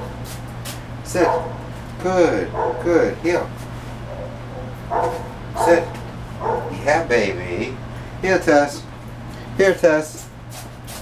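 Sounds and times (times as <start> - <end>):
dog barking: 1.2 - 1.7, 2.5 - 3.0, 4.1 - 6.9.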